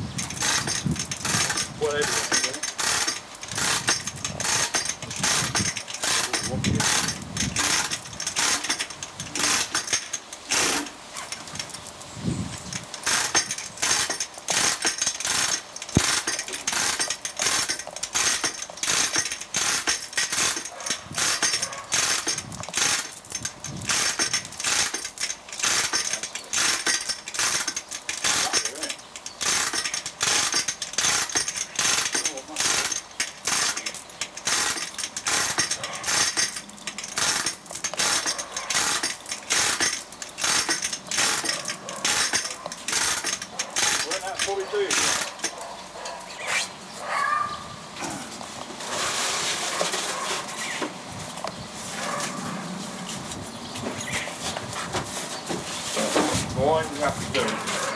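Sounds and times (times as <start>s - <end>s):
ratchet clicking: 0.2s - 11.8s, 12.7s - 46.1s.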